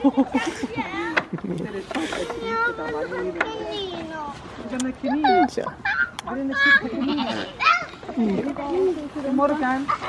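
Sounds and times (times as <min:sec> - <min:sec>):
children's and adults' voices: 0:00.0 - 0:10.0
goats bleating: 0:06.7 - 0:07.9.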